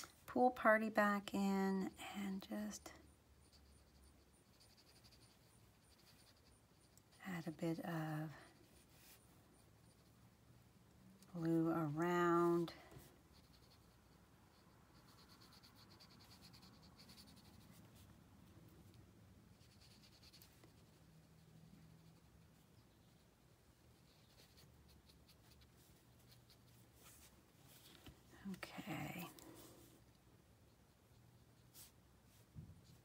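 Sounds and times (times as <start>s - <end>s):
brush scratching on card: 3.3s - 10.6s, 11.4s - 33.0s.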